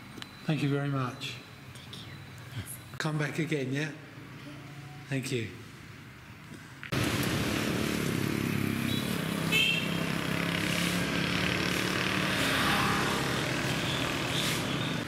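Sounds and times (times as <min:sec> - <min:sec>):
small motorbike engines running: 0:06.9 - 0:15.0.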